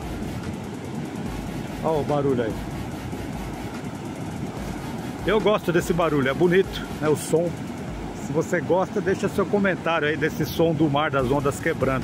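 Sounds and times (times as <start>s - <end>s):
sea surf breaking on a beach: 0.0s - 12.0s.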